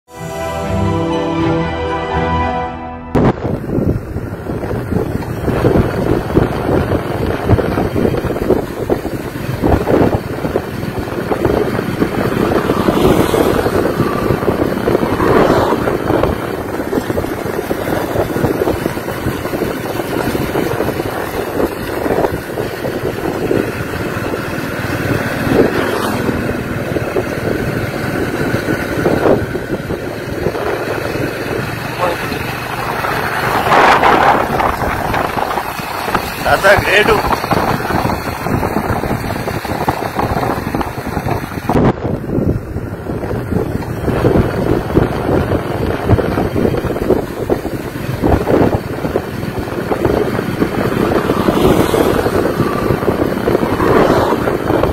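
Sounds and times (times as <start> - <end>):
wind rushing over microphone: 3.0 - 54.9
motorcycle engine: 3.1 - 54.9.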